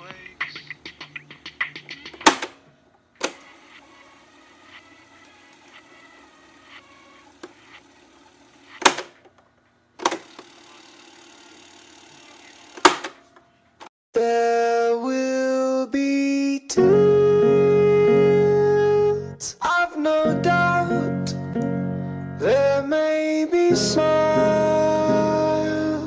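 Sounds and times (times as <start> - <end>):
music with keyboard chords: 0.0 - 2.4, 16.7 - 26.0
muffled tape sound: 0.0 - 9.4
cassette player button clicks: 2.2 - 2.6.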